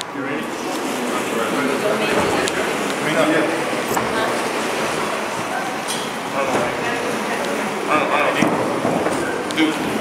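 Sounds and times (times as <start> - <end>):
people talking in echoing lobby: 0.0 - 10.0.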